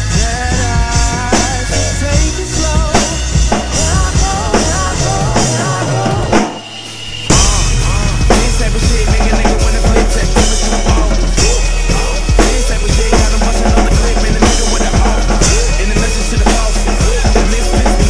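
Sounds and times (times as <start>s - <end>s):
backing track music: 0.0s - 18.0s
drum kit groove: 0.0s - 18.0s.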